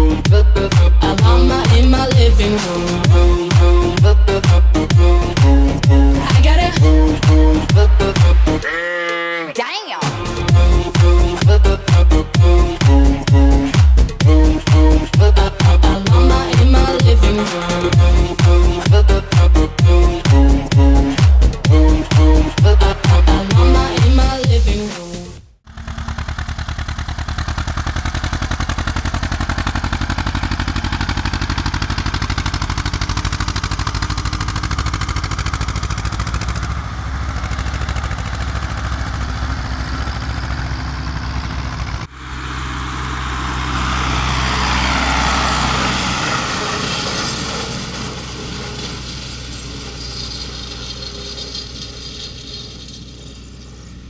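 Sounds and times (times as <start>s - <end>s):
tractor diesel engine running: 0.0s - 9.3s, 10.1s - 54.0s.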